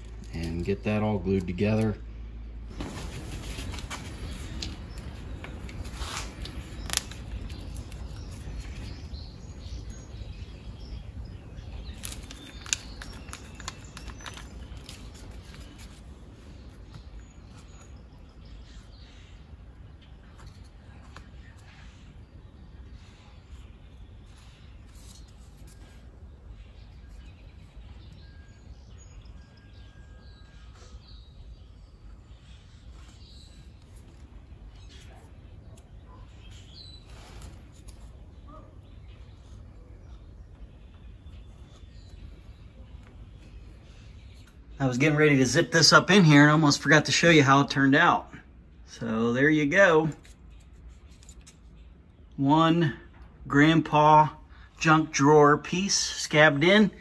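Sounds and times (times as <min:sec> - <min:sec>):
low steady hum: 0:00.0 - 0:57.0.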